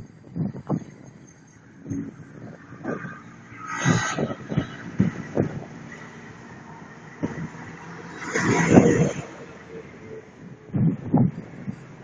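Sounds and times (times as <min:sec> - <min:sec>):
urban hum: 0:00.0 - 0:12.0
vehicle passing: 0:01.6 - 0:12.0.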